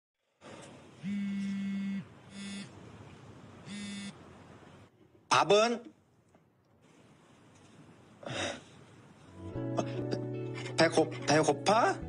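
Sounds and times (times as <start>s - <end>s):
smartphone vibrating: 1.0s - 2.7s, 3.7s - 4.2s.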